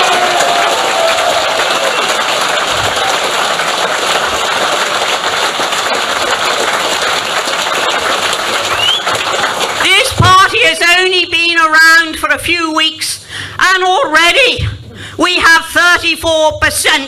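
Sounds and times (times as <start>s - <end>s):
large audience applauding: 0.0s - 10.6s.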